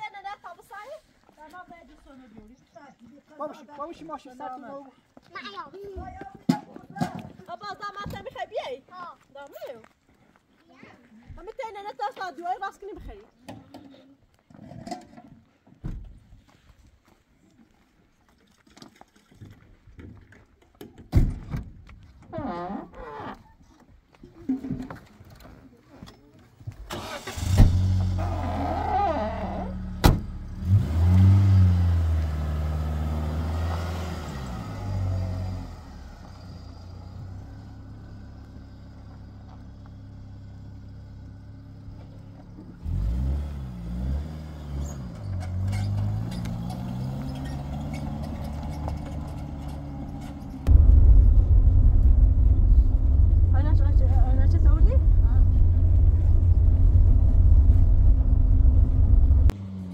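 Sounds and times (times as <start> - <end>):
tyres rumbling on dirt track: 26.7 - 59.9
truck engine revving: 27.0 - 37.9, 42.8 - 59.9.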